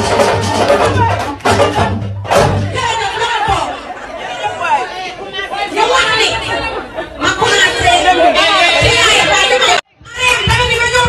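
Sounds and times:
people talking and calling out: 0.0s - 11.0s.

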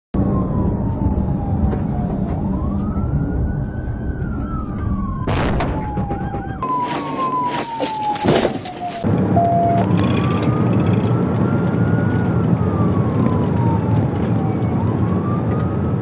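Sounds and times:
police siren wailing: 0.2s - 16.0s.

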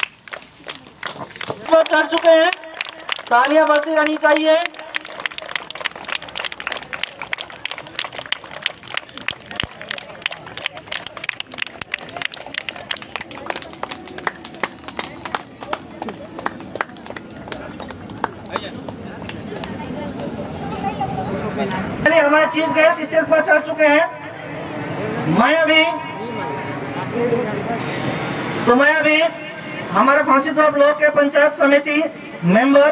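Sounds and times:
crowd clapping: 0.0s - 20.4s.

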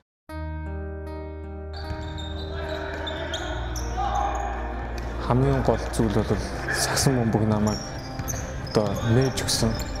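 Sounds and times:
background music: 0.3s - 10.0s
sharp court noises: 1.8s - 5.2s, 7.5s - 10.0s
indoor hall noise: 1.8s - 10.0s.

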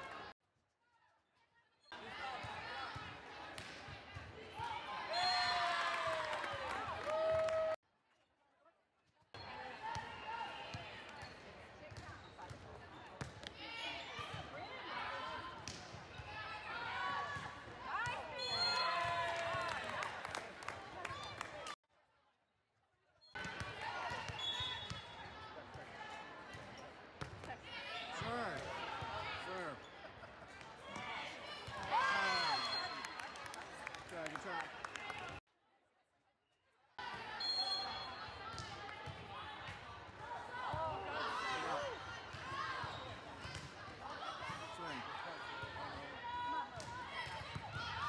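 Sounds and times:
players and spectators cheering: 4.6s - 7.8s, 16.6s - 21.8s, 31.0s - 35.4s
referee's whistle: 18.3s - 19.1s, 24.2s - 25.2s, 32.0s - 33.3s, 37.2s - 38.3s.

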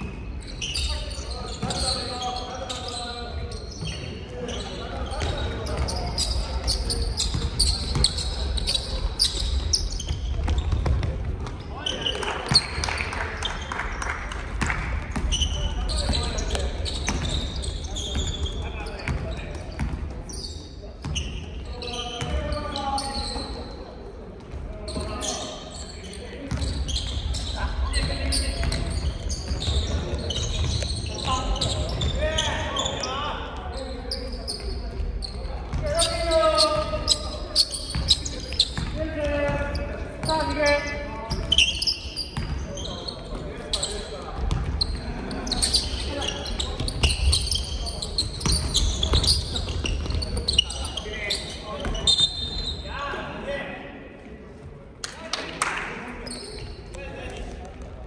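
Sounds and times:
players' voices and calls: 0.0s - 58.0s.

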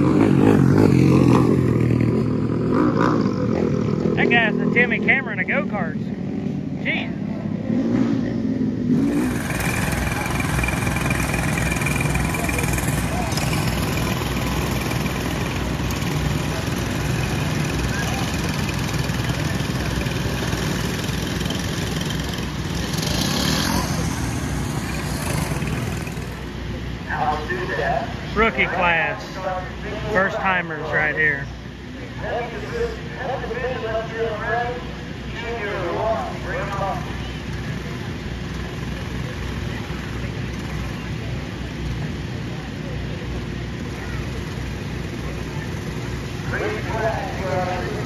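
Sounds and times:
go-kart engines running: 0.0s - 48.0s.

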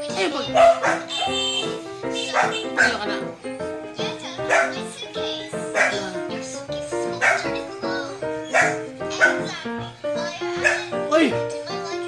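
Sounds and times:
background music: 0.0s - 12.0s
bark-like yelp: 0.5s - 3.1s, 4.4s - 4.8s, 5.7s - 6.1s, 7.2s - 7.6s, 8.4s - 9.6s, 10.6s - 11.0s.

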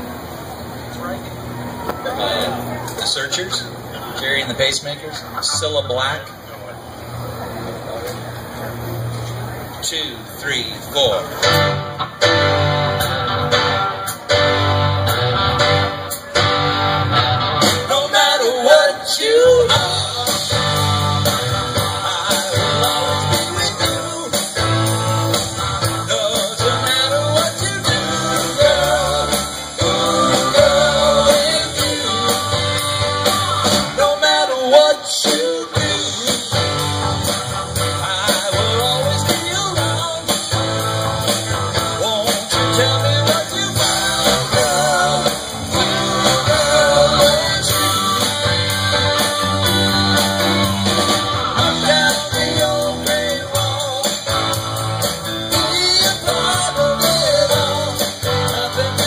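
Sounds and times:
rock band playing live: 10.9s - 59.0s
person singing: 17.8s - 59.0s.

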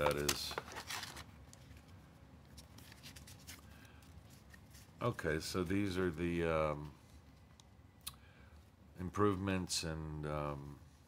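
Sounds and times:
cards rustling and tapping: 0.0s - 4.9s.

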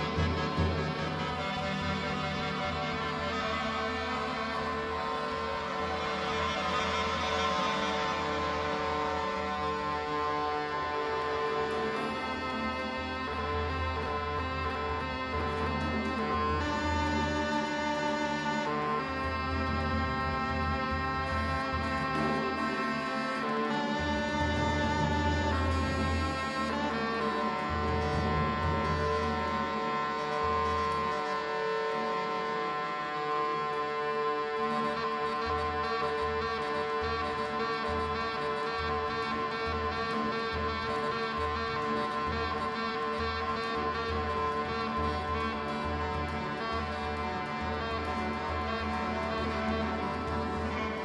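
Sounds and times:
bagpipes drone: 0.0s - 51.0s
wind and drum ensemble: 0.0s - 51.0s
acoustic ensemble drone: 36.8s - 51.0s.

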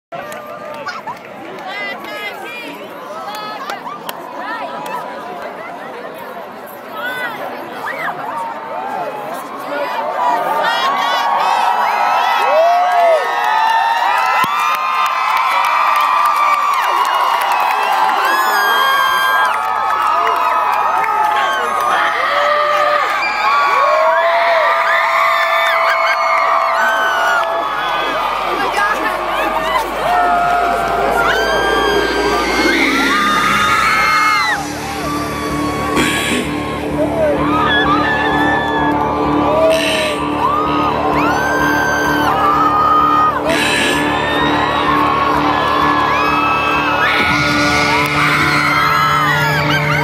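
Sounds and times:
crowd screaming and cheering: 0.0s - 50.0s
pulsing amplified music: 27.8s - 50.0s.

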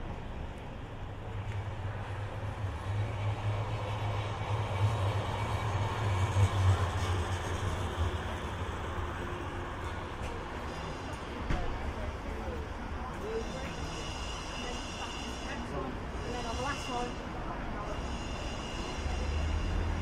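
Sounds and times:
tram passing with low rumble: 0.0s - 20.0s.

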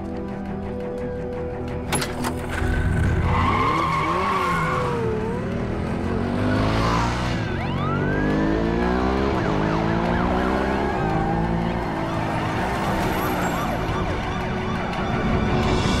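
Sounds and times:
police siren wailing: 3.2s - 5.6s, 6.4s - 16.0s.

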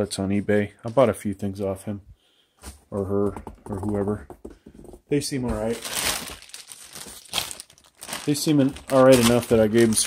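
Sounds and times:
plastic bag crinkling: 5.5s - 10.0s.

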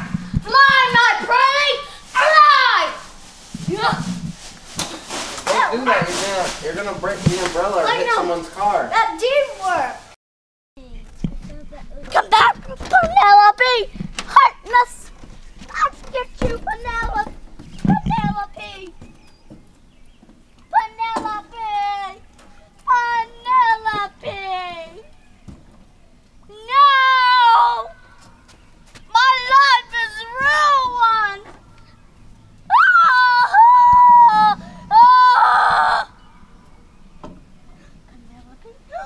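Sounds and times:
boy screaming raspily: 0.0s - 3.1s, 3.7s - 4.0s, 12.2s - 15.0s, 20.8s - 22.2s, 22.9s - 25.0s, 26.5s - 28.0s, 29.1s - 31.5s, 32.7s - 36.2s
child shouting: 0.4s - 3.1s, 7.8s - 9.9s, 12.1s - 15.0s, 20.7s - 22.2s, 22.9s - 25.0s, 26.5s - 28.1s, 29.1s - 31.5s, 32.7s - 36.2s
young boy wailing: 2.1s - 3.0s, 26.6s - 28.0s, 32.7s - 36.1s.

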